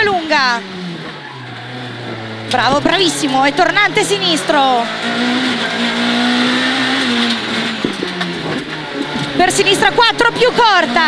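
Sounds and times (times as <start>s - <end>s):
car engine from inside cabin: 0.0s - 11.0s.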